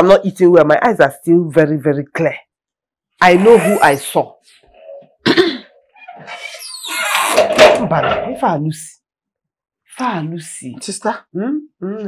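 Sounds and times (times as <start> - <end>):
woman coughing: 5.2 - 5.8.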